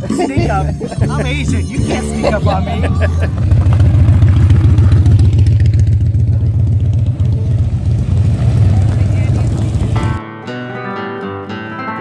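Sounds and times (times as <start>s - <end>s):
vehicle engine idling: 1.3s - 10.2s.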